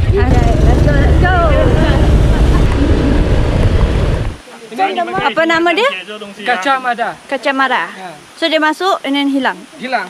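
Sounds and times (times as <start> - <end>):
scooter engines running: 0.0 - 4.4
wind buffeting microphone: 0.0 - 4.4.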